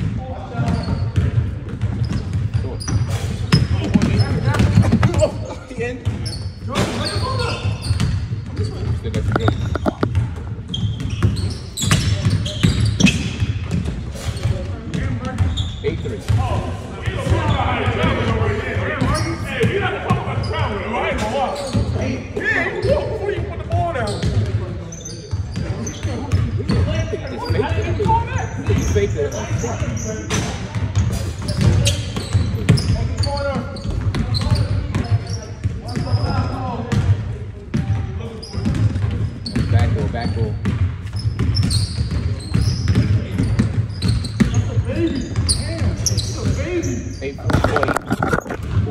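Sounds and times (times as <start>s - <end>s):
basketballs bouncing on wood floor: 0.0s - 18.4s, 23.7s - 46.8s, 47.5s - 48.9s
players' voices: 0.0s - 48.9s
sneaker squeaks: 0.3s - 18.3s, 19.0s - 37.1s, 37.7s - 48.9s.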